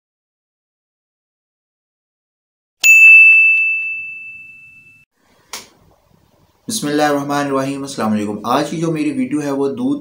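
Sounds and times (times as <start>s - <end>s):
bright bell ding: 2.8s - 5.0s.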